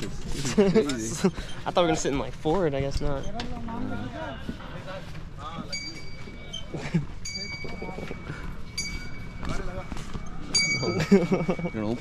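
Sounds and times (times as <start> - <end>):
laughter: 0.4 - 1.4, 10.8 - 12.0
small metal bell ringing: 5.7 - 12.0.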